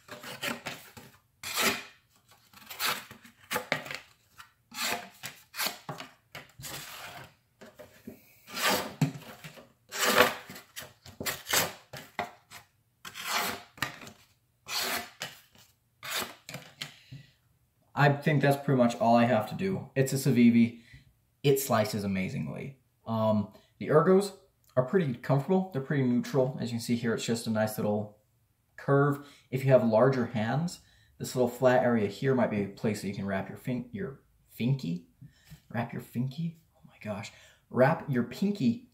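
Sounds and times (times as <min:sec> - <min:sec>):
knife cutting cardboard: 0:00.0 - 0:04.1, 0:04.7 - 0:16.8.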